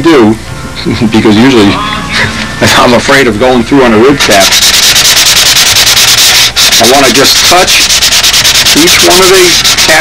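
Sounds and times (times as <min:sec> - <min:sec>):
sandpaper rubbing: 0:06.8 - 0:10.0.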